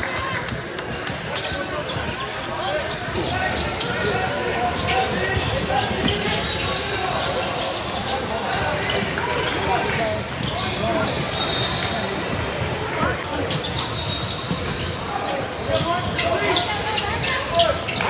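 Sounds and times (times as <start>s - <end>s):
people calling out and talking: 0.0s - 18.0s.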